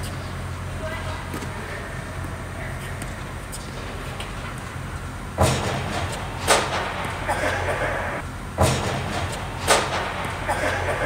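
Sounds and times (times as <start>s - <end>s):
tennis balls struck by rackets: 1.2s - 11.0s.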